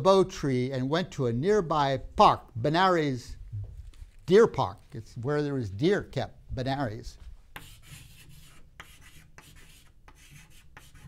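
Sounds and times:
chalk scratching on chalkboard: 7.5s - 11.0s
chalk tapping: 7.5s - 11.0s.

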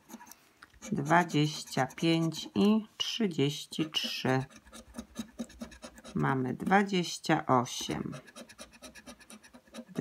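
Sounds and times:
scratch card scraping: 0.0s - 2.8s, 3.7s - 6.8s, 7.8s - 10.0s.

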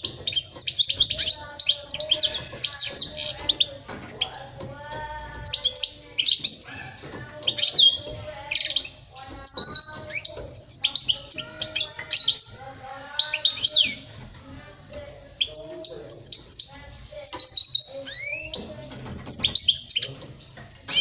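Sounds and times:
goldfinch twittering song: 0.0s - 14.3s, 14.9s - 21.0s.

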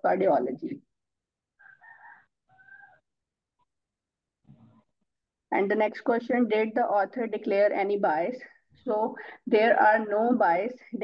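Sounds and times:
faint animal call: 1.6s - 3.0s.

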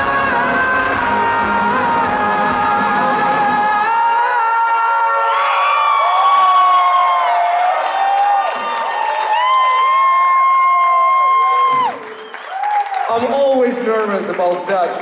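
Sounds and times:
crowd cheering and whooping: 0.8s - 13.6s.

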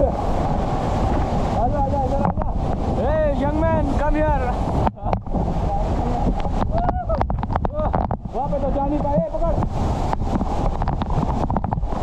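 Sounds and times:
waterfall rushing: 0.0s - 12.0s.

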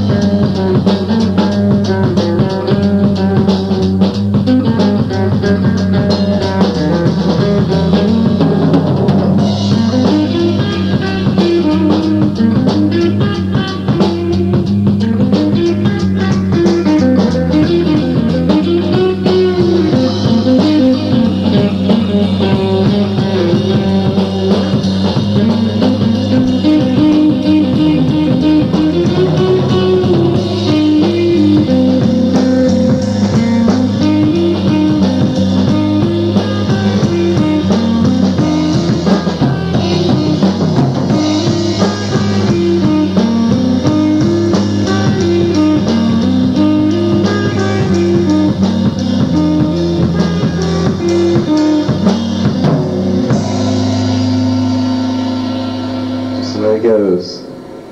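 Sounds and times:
bass guitar: 0.0s - 57.9s
drum kit: 0.0s - 57.9s
electric guitar riff: 0.0s - 57.9s
cymbal wash: 53.4s - 57.9s.

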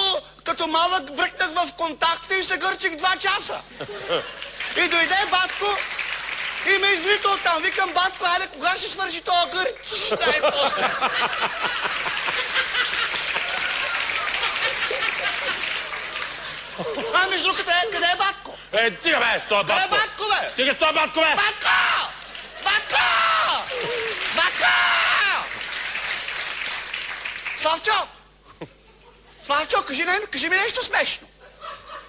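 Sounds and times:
audience laughing: 3.7s - 5.4s, 9.8s - 18.2s, 31.4s - 32.0s
audience applauding: 4.0s - 8.8s, 9.4s - 17.7s, 22.1s - 27.8s
person shouting: 22.9s - 25.4s.

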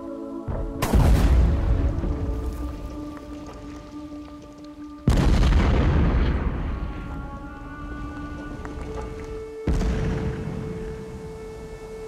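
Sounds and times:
explosion boom with rumbling tail: 0.8s - 2.4s, 5.0s - 11.0s.

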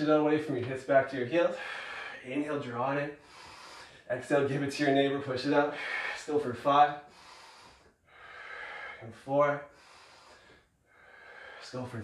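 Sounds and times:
man breathing forcefully: 1.5s - 2.2s, 3.2s - 4.1s, 5.7s - 6.3s, 7.0s - 9.0s, 9.7s - 11.6s.

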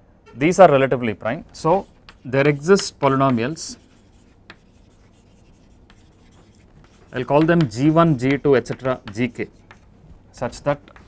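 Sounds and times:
chalk scratching on blackboard: 1.5s - 9.9s, 10.5s - 11.0s.

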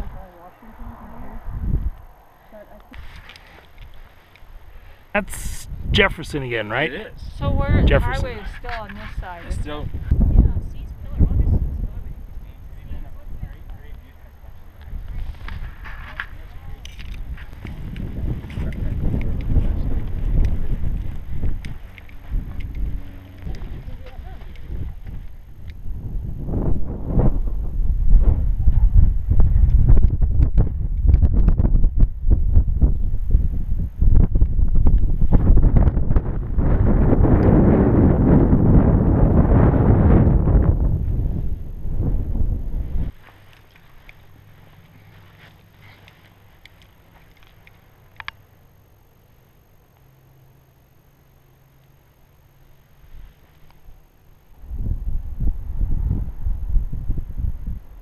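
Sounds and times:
wind buffeting microphone: 0.0s - 4.8s, 5.5s - 43.2s, 54.6s - 58.0s.

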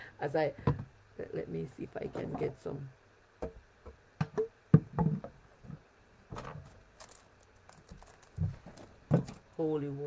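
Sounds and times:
objects knocking and clicking: 3.4s - 9.5s.

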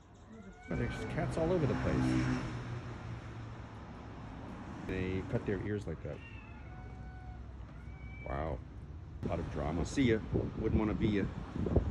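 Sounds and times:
cat meowing: 0.3s - 1.5s, 6.1s - 8.6s.

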